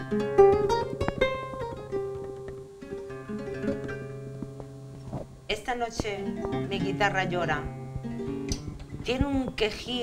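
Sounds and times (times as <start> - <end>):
solo classical guitar: 0.0 - 10.0
woman reciting: 5.5 - 7.7, 9.0 - 10.0.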